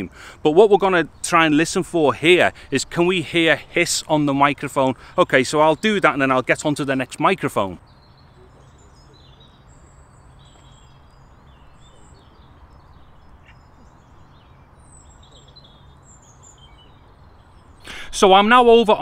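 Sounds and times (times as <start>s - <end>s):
faint microphone hiss: 0.0s - 19.0s
small birds chirping: 0.0s - 19.0s.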